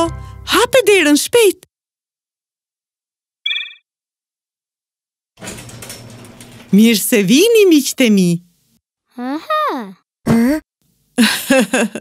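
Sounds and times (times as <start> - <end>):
garage door mechanical whirr: 5.4 - 6.8.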